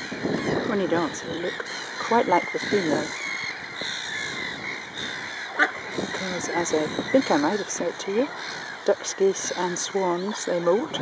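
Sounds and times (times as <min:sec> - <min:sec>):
gulls calling: 0:00.0 - 0:11.0.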